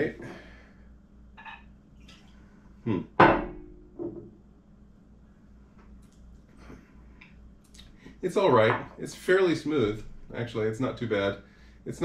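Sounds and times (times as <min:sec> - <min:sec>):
glassware knocking on stone: 0:03.2 - 0:04.3.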